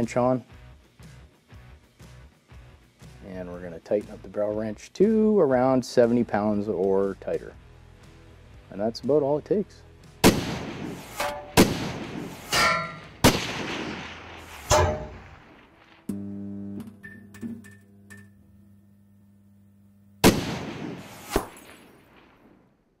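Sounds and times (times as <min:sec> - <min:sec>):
sharp echoing booms: 0:10.2 - 0:16.1, 0:20.2 - 0:22.6.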